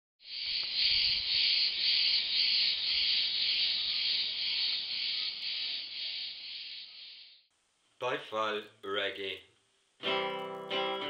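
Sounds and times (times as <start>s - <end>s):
high-pitched insect chirring: 0.2s - 7.5s.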